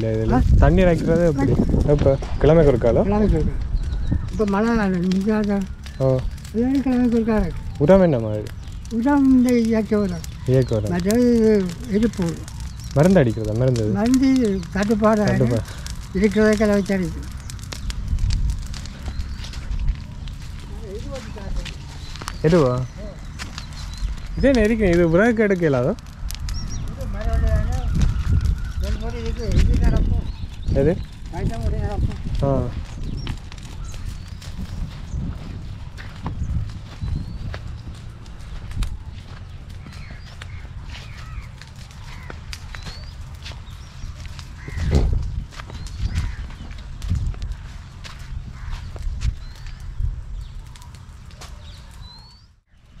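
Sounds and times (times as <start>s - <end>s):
faint crackles and rustles: 0.0s - 53.0s
wind rumbling on microphone: 0.0s - 53.0s
bird chirps: 3.6s - 25.4s, 26.4s - 47.0s, 47.6s - 53.0s
footsteps on sandy soil: 14.1s - 25.1s, 26.8s - 52.2s.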